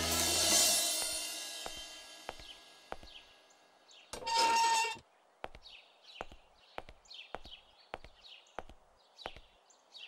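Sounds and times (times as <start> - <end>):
small birds chirping: 1.6 - 4.2, 5.0 - 10.0.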